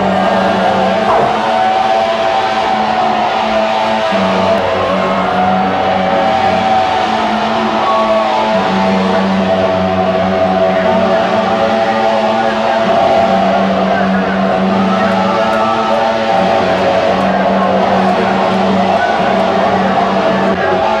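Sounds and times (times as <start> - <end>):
electronic dance music: 0.0 - 21.0.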